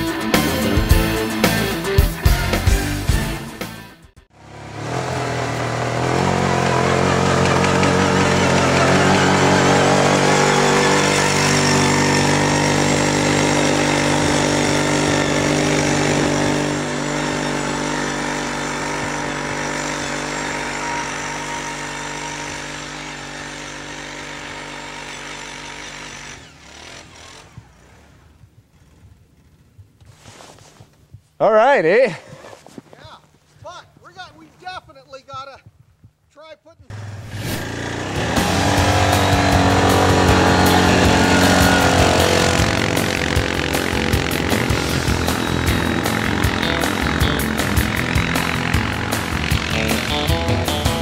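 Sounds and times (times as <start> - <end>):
quad bike engine running: 4.3 - 29.9, 36.9 - 51.0.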